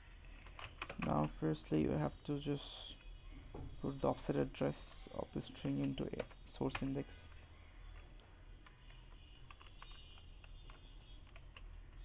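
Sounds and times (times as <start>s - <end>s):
faint keyboard typing: 0.2s - 1.5s, 4.8s - 12.0s.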